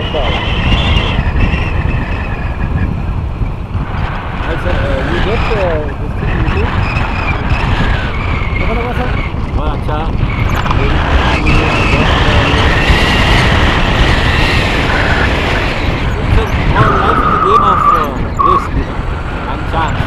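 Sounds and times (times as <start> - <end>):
wind buffeting microphone: 0.0 - 20.0
high steady whistling tone: 16.4 - 18.8.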